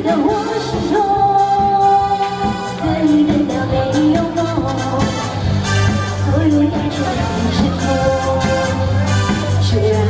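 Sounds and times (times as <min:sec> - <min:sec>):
backing music: 0:00.0 - 0:10.0
woman singing pop ballad: 0:00.0 - 0:10.0.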